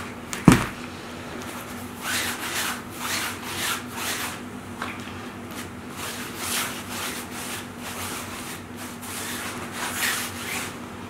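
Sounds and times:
steady low hum: 0.0 - 11.0
painting tool scratchy strokes: 5.9 - 10.7.

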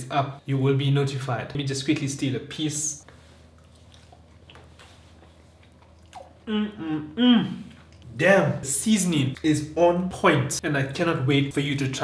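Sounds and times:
faint chewing mouth clicks: 3.5 - 6.4.

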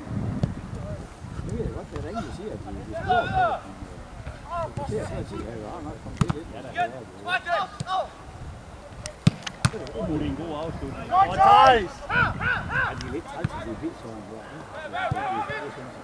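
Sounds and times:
players shouting calls: 2.1 - 16.0
football being kicked: 9.2 - 9.9.

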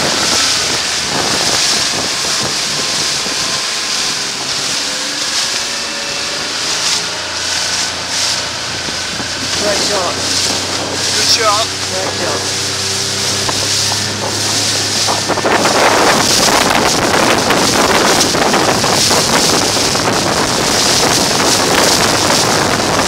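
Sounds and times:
motorboat engine humming: 0.0 - 23.0
water rushing and splashing: 0.0 - 23.0
wind buffeting microphone: 0.0 - 23.0.

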